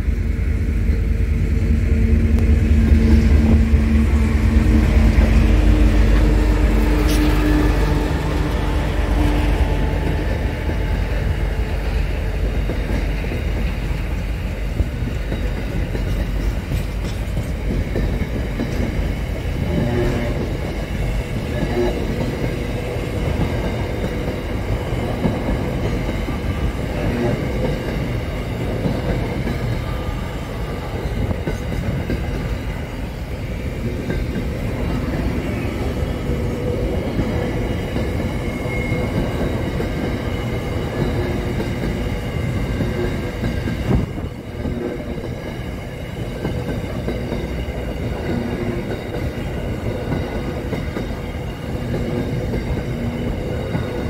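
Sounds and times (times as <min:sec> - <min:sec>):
locomotive engine hum: 0:00.0 - 0:54.0
train wheels rumbling on rails: 0:00.0 - 0:54.0.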